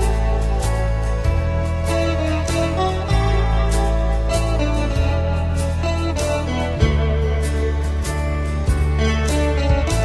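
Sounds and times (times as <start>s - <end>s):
backing track of bass and drums: 0.0s - 10.0s
electric guitar melody: 0.0s - 10.0s.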